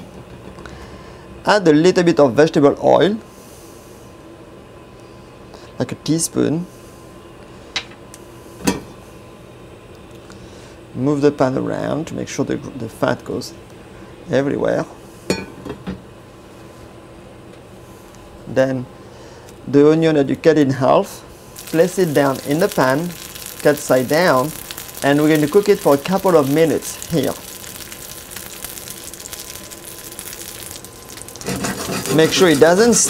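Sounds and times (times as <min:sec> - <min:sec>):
onions sizzling in oil: 0:21.5 - 0:33.0.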